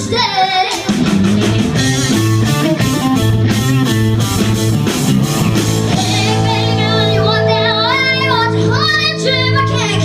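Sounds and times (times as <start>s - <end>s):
girl singing lead vocals: 0.0s - 1.0s, 5.9s - 10.0s
live rock band playing: 0.0s - 10.0s.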